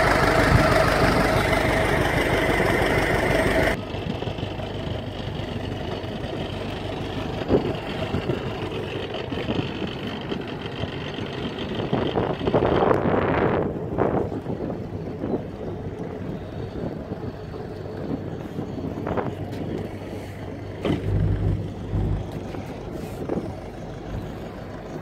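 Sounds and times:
boat engine humming: 0.0s - 25.0s
wind on microphone: 9.3s - 24.6s.

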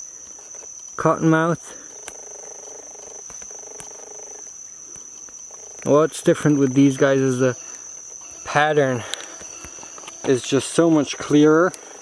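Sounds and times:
insect chorus buzzing: 0.0s - 12.0s
low pulsing insect call: 0.0s - 12.0s.

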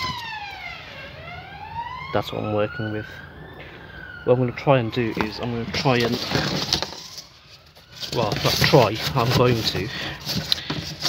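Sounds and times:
emergency vehicle siren wailing: 0.0s - 10.4s.

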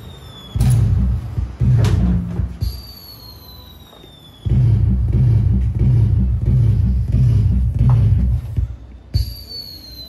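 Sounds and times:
falling firework whistle: 0.0s - 1.0s, 2.6s - 4.8s, 9.2s - 10.0s
low rumble with thumps: 0.6s - 2.7s, 4.5s - 8.9s.

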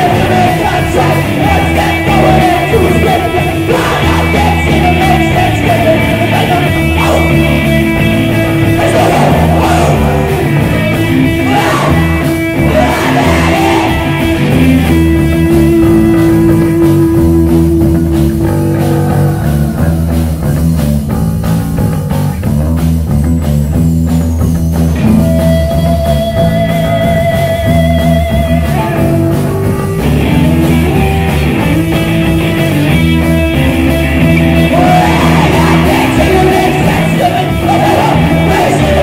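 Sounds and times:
live rock band playing loudly: 0.0s - 39.0s.

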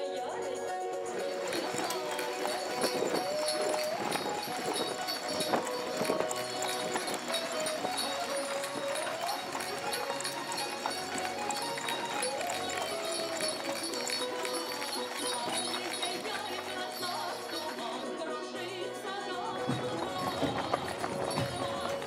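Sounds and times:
music playing: 0.0s - 22.0s
horse hooves clip-clopping on dirt: 1.1s - 18.3s, 18.9s - 22.0s.

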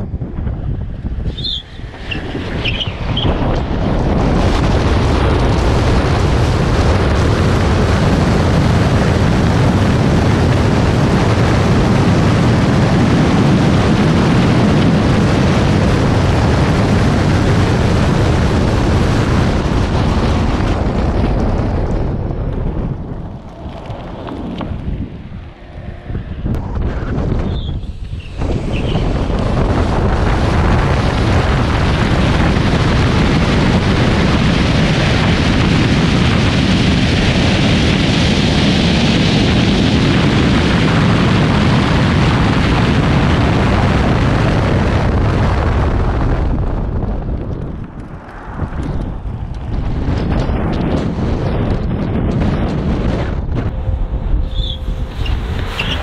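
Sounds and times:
road noise: 0.0s - 56.0s
wind rumble on camera: 0.0s - 56.0s.

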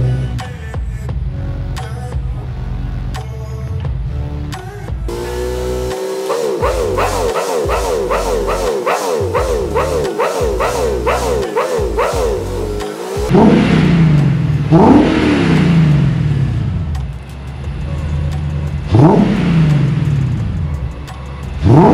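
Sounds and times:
engine revving: 0.0s - 21.9s
sped up engine buzzing: 5.1s - 21.9s.

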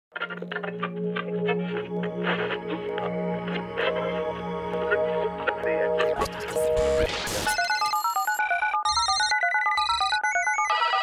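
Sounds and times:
phone ringtone beeping melody: 5.0s - 11.0s.

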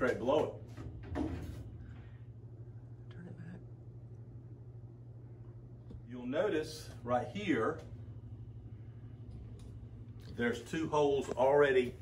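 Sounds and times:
speech: 0.0s - 0.6s, 6.1s - 7.9s, 10.3s - 12.0s
steady low hum: 0.0s - 12.0s.

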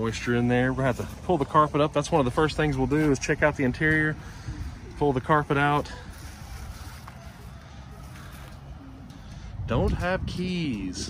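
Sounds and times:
wind rumble on microphone: 9.2s - 11.0s.

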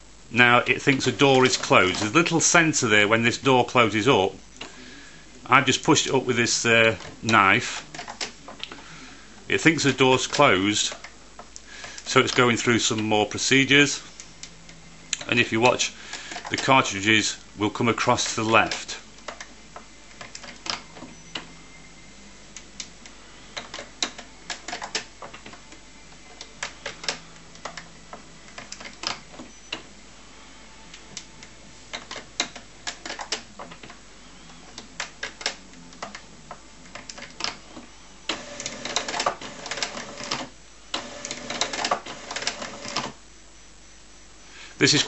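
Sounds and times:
faint motor hum: 0.0s - 45.0s
printer mechanism clicks and clacks: 38.3s - 43.2s.

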